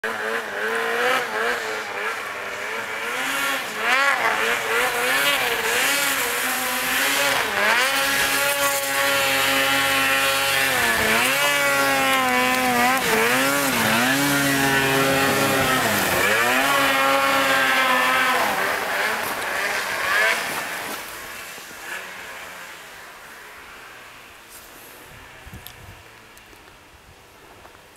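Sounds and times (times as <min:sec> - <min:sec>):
snowmobile engine revving: 0:00.0 - 0:26.4.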